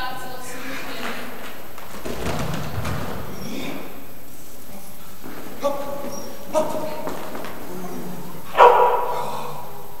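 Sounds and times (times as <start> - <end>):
dog barking in a hall: 5.9 - 10.0.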